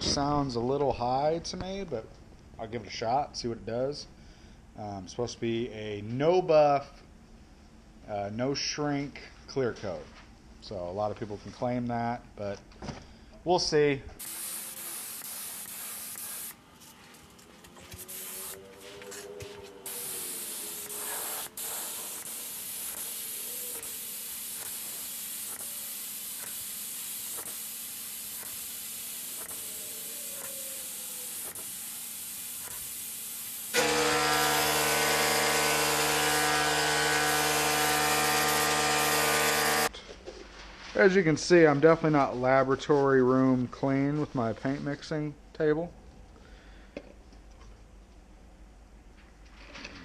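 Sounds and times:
spray gun air hiss: 0:14.2 - 0:16.6, 0:17.9 - 0:19.1, 0:19.8 - 0:33.8
steady humming machine: 0:33.7 - 0:39.9.

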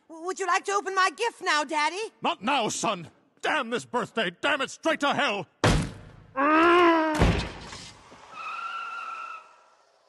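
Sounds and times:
car tires squealing: 0:08.1 - 0:10.0.

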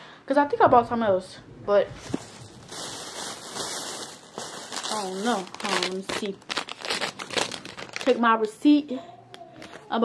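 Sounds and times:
paper receipt crinkling: 0:02.0 - 0:08.6.

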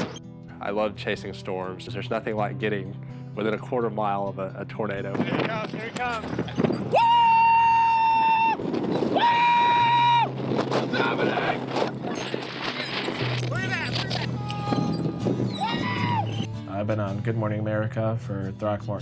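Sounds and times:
people yelling excitedly: 0:06.9 - 0:10.3, 0:10.9 - 0:11.7, 0:13.7 - 0:16.5.

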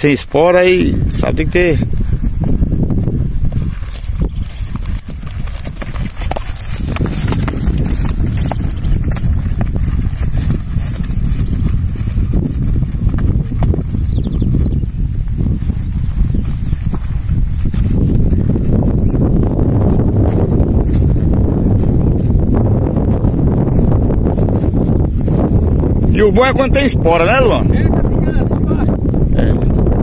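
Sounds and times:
horse hoofbeats on dirt: 0:00.8 - 0:30.0
steady low rumble: 0:01.8 - 0:26.1.

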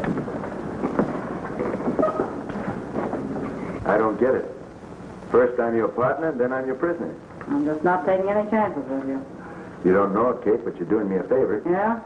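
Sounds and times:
film soundtrack hiss and crackle: 0:00.0 - 0:12.0.

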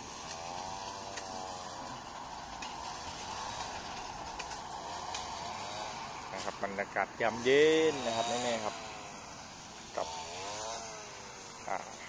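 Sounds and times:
engine drone wavering: 0:00.0 - 0:12.0.

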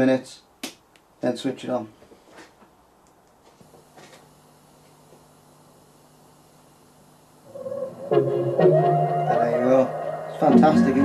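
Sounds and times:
speaker hum and hiss: 0:00.0 - 0:11.0.

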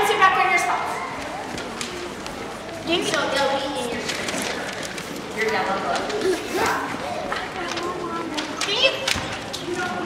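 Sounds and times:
children's footsteps: 0:00.0 - 0:10.0
faint chatter: 0:00.0 - 0:10.0.

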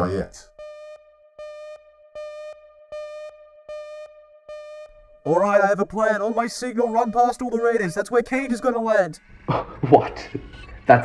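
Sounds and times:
steady electronic tone: 0:00.6 - 0:11.0
buzzy electronic beep: 0:04.6 - 0:09.4.

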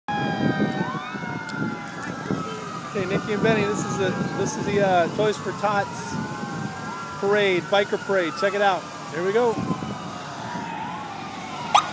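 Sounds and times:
sirens wailing: 0:00.1 - 0:11.9.

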